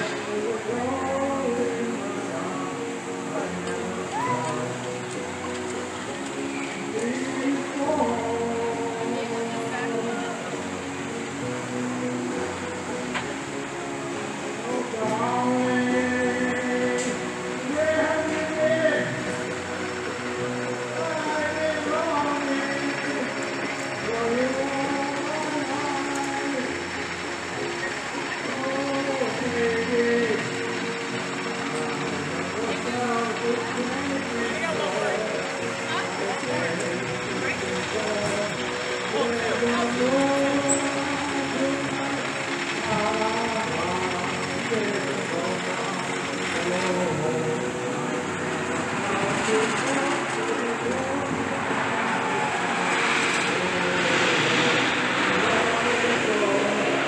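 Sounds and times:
amusement park din: 0.0 - 57.0
indistinct voices: 0.0 - 57.0
mechanical rumble: 0.0 - 57.0.

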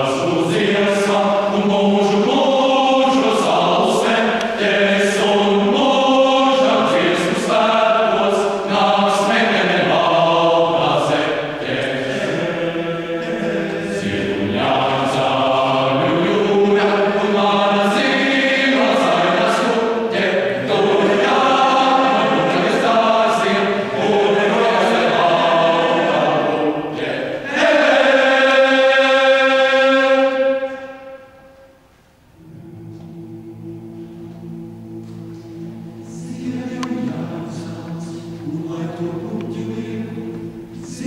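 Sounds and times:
choir singing: 0.0 - 31.8, 32.4 - 41.0.

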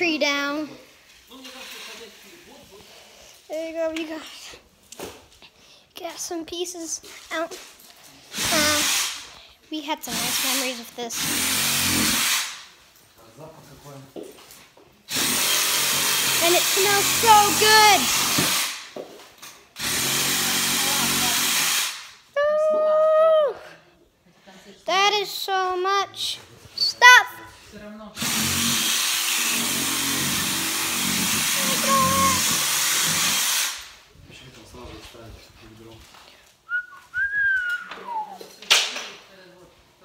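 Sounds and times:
power drill cutting branches: 8.3 - 9.3, 10.1 - 12.7, 15.1 - 18.9, 19.8 - 22.2, 28.2 - 34.0.

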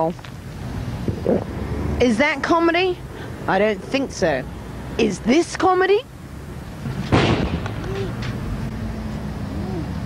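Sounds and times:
city traffic rumble: 0.0 - 10.0
loud heavy bang: 6.8 - 7.9.

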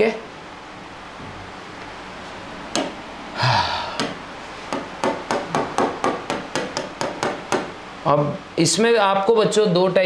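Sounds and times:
stylus tapping on screen: 2.7 - 3.0, 4.0 - 7.7.

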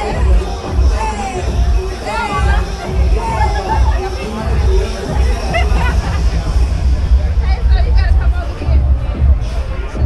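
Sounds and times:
crowd talking: 0.0 - 10.0
heavy low rumble: 0.0 - 10.0
music playing: 0.0 - 10.0.

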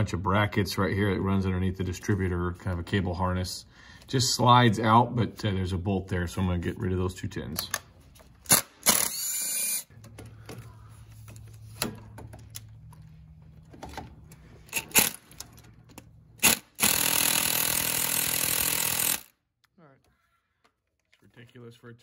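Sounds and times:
sharp metal clicks: 14.7 - 19.7
cordless power tool running: 16.4 - 19.3.

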